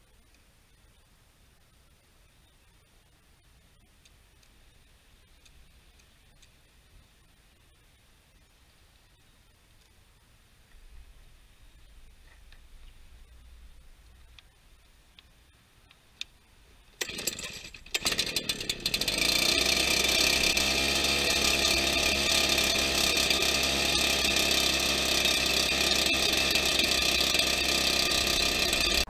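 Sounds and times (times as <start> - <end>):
leaf blower engine starting: 17.0 - 29.0.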